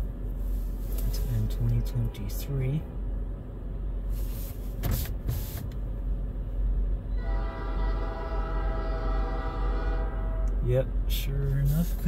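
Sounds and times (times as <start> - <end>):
low steady rumble: 0.0 - 12.0
locomotive air horn: 7.1 - 10.6.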